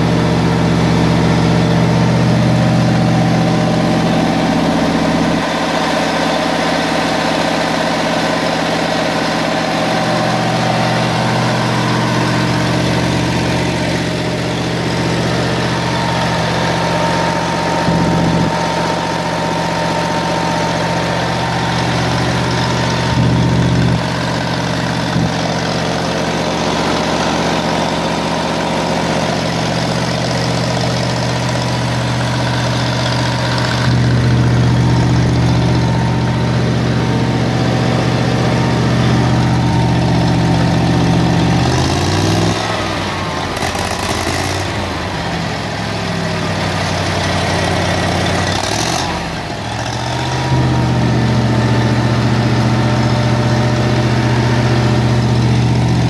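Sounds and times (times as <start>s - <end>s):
generator engine running: 0.0s - 56.0s.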